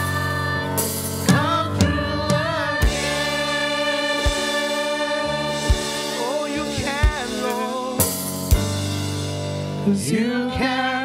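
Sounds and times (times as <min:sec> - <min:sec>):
gospel singers with keyboard: 0:00.0 - 0:11.0
soft drum beats: 0:01.2 - 0:09.6.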